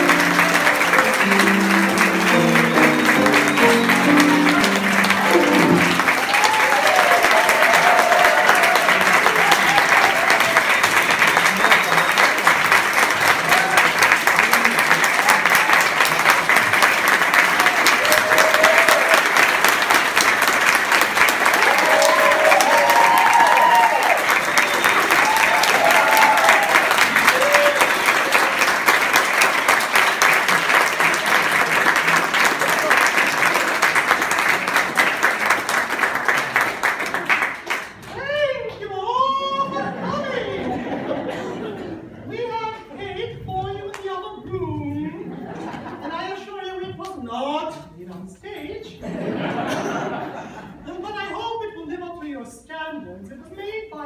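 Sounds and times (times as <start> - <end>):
crowd applauding: 0.0 - 38.4
people cheering: 0.0 - 38.4.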